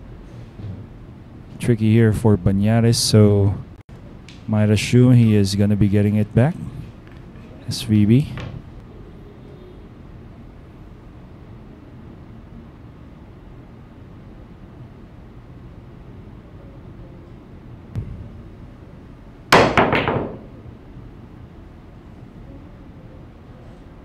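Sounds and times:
room hum: 0:00.0 - 0:24.0
cue striking cue ball: 0:19.5 - 0:20.6
sharp clacks of pool balls: 0:19.6 - 0:20.6.

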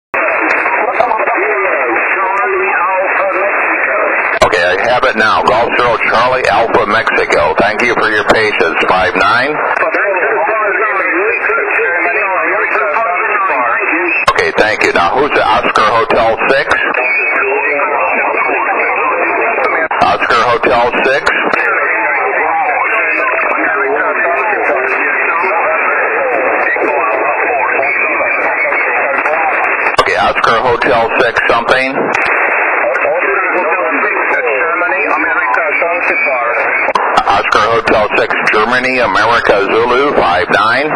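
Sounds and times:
overlapping radio voices garble: 0:00.2 - 0:40.9.

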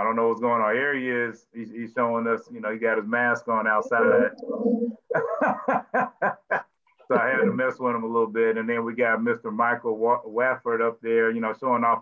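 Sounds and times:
person laughing: 0:03.5 - 0:04.3, 0:05.1 - 0:08.3.

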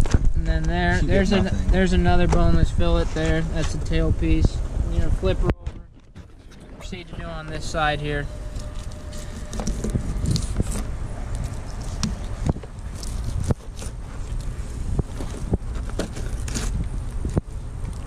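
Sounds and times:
wind buffeting microphone: 0:00.0 - 0:18.0
knife crunching through fish bones: 0:15.3 - 0:16.9.

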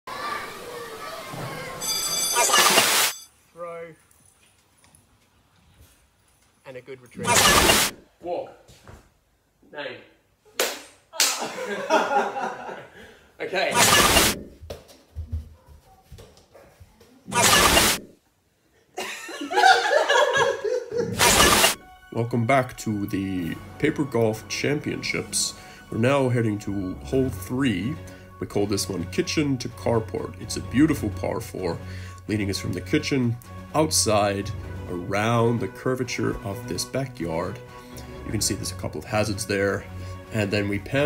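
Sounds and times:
children shouting at play: 0:00.1 - 0:02.0
burst of static hiss: 0:02.4 - 0:03.3, 0:07.2 - 0:08.0, 0:13.7 - 0:14.5, 0:17.3 - 0:18.2, 0:21.2 - 0:21.8
burst of laughter: 0:19.0 - 0:21.2.

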